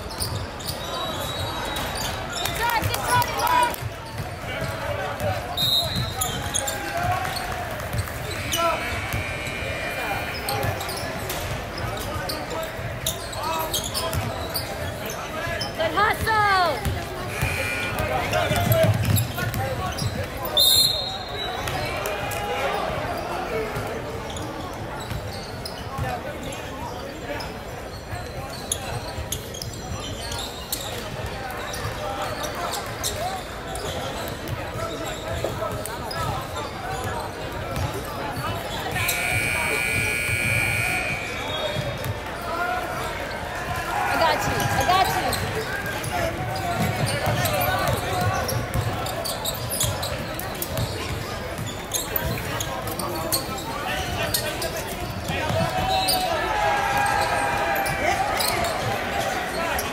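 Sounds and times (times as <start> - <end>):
voices in a gym: 0.0 - 59.9
shoes on court: 0.2 - 20.4, 33.0 - 59.9
harsh buzzer tone: 8.7 - 10.5, 17.3 - 18.3, 39.0 - 41.5.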